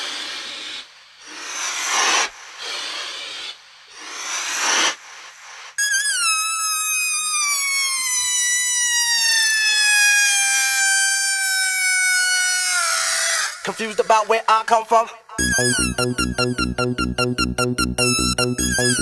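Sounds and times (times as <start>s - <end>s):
high falling squeal: 5.8s - 13.6s, 15.4s - 19.0s.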